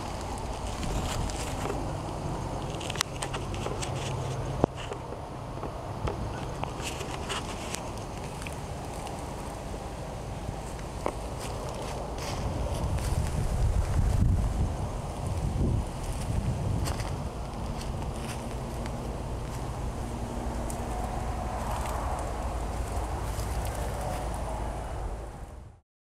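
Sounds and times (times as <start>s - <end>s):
wind buffeting microphone: 0.0s - 25.8s
light rustling: 6.1s - 9.8s.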